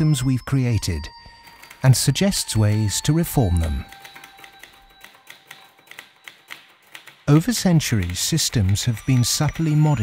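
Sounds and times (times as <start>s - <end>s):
typewriter keys clicking: 1.4s - 10.0s.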